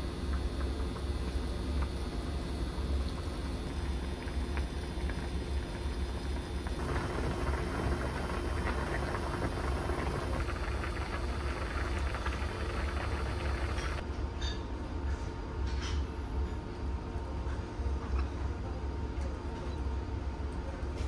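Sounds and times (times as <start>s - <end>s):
low hum: 0.0s - 14.1s
broth boiling and bubbling: 0.0s - 21.0s.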